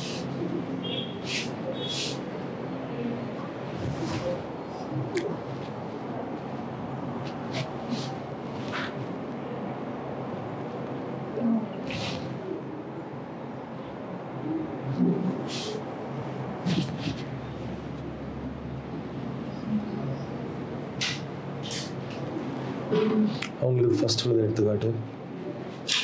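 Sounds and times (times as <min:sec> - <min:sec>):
faint low voice sounds: 0:00.0 - 0:05.6, 0:11.2 - 0:16.0.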